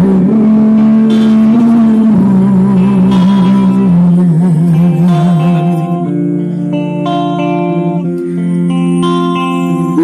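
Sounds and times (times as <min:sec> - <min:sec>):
song through portable speaker: 0:00.0 - 0:10.0.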